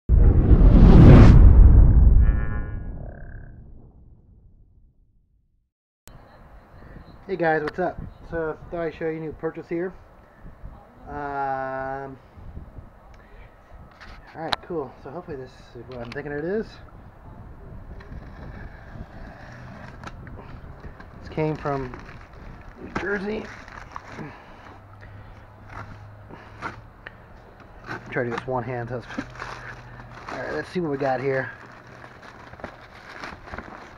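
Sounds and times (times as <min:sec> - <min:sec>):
deep rumble: 0:00.1 - 0:05.4
plastic mailer rustling and clicks: 0:27.6 - 0:33.9.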